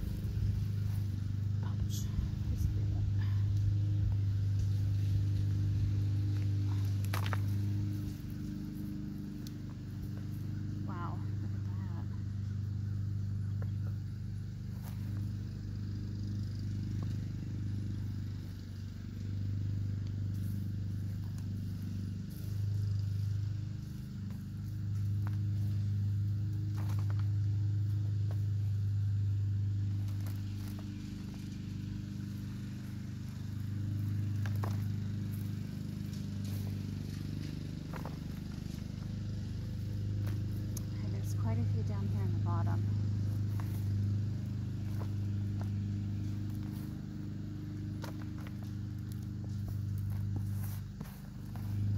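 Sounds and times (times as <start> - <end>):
steady low hum: 0.0 - 51.9
hands digging in soil: 42.9 - 51.9.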